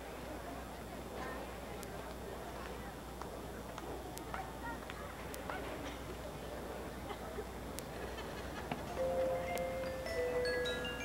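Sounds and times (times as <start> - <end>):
murmur of spectators: 0.0 - 11.0.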